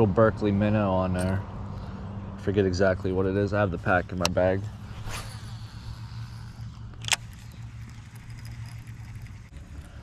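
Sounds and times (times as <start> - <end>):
low hum: 3.5 - 10.0
reel click: 4.2 - 9.8
fishing line paying out: 4.6 - 10.0
fishing rod swish: 4.9 - 6.4.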